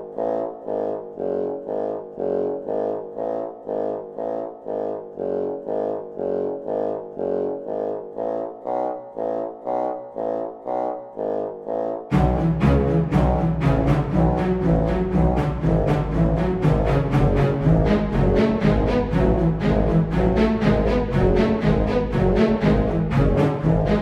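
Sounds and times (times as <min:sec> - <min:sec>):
low brass repeated notes: 0:00.0 - 0:24.0.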